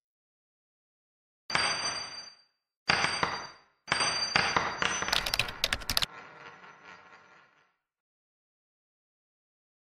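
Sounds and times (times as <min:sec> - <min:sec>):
rapid sharp clicks: 0:05.1 - 0:06.1.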